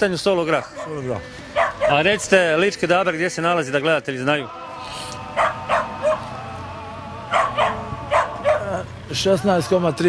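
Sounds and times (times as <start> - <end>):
dog barking: 0.5 - 2.2, 5.4 - 6.3, 7.3 - 8.8.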